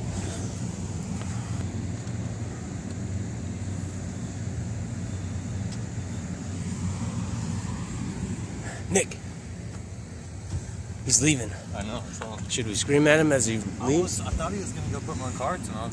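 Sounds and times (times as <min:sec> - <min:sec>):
car engine idling: 0:00.0 - 0:15.9.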